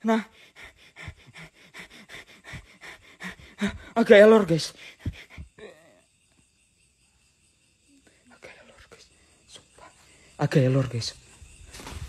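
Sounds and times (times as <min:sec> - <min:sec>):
rapid panting breaths: 0:00.1 - 0:05.6.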